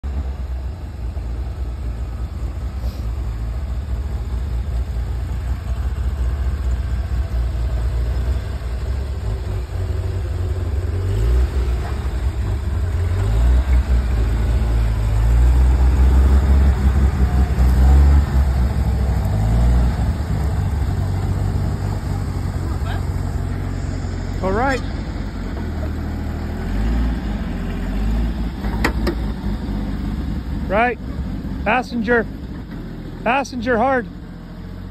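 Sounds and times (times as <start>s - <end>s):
engine revving: 5.4s - 34.9s.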